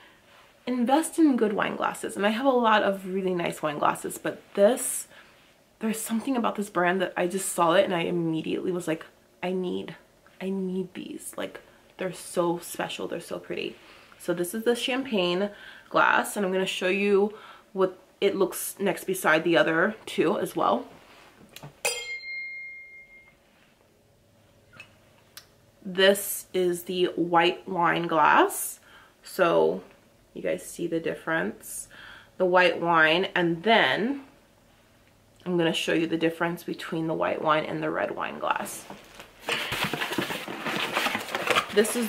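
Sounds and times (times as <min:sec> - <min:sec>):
wine glass clink ringing: 0:21.8 - 0:23.4
faint handling sounds: 0:38.8 - 0:42.0
cardboard packaging rustling: 0:39.0 - 0:42.0.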